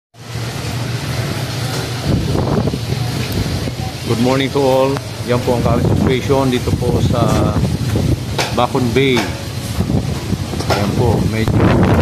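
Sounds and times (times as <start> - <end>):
strong wind buffeting microphone: 0.4 - 12.0.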